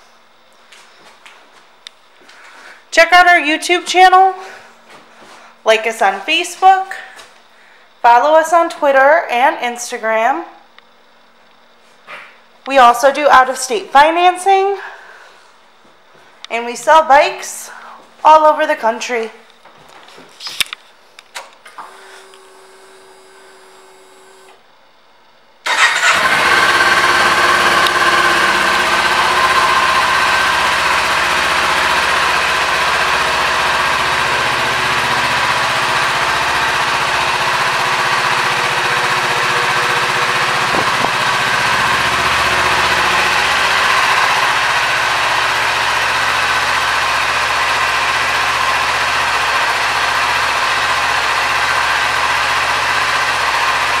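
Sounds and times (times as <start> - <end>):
motorcycle engine starting and idling: 21.6 - 24.6, 25.6 - 54.0.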